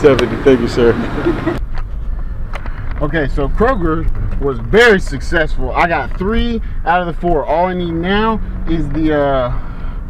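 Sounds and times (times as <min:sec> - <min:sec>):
voice: 0:00.0 - 0:01.6, 0:03.0 - 0:09.6
car rumble inside cabin: 0:00.0 - 0:10.0.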